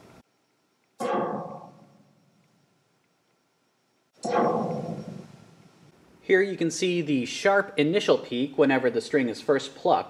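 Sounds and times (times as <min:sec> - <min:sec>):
plucked wire twang sweeping down: 0:01.0 - 0:01.8, 0:04.2 - 0:05.3.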